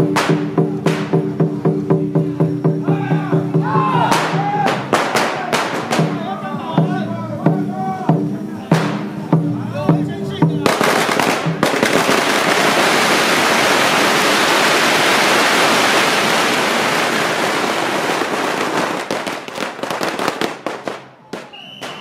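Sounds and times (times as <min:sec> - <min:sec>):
rhythmic drumming and music: 0:00.0 - 0:13.1
firecrackers crackling and banging: 0:00.0 - 0:22.0.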